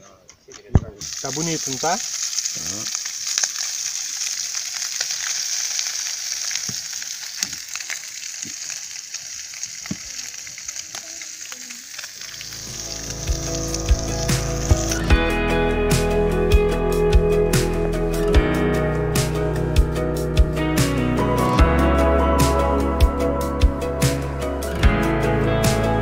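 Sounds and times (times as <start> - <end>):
fire crackling: 0.3 - 26.0
meat sizzling in a pan: 1.0 - 15.1
music: 12.4 - 26.0
plucked guitar notes: 12.4 - 26.0.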